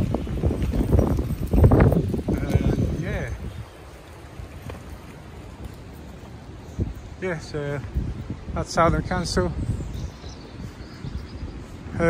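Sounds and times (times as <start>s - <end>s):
wind rumble on microphone: 0.0s - 12.0s
faint bird chirps: 9.5s - 12.0s.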